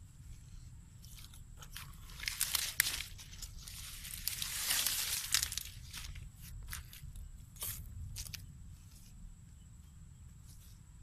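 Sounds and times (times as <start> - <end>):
dry vegetation crackling: 0.9 - 9.2
nylon net being handled: 1.0 - 7.0.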